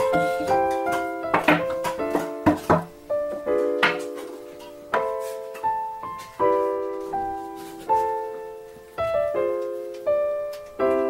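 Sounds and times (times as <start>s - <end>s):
objects knocking on wooden workbench: 0.0s - 3.0s
piano music: 0.0s - 11.0s.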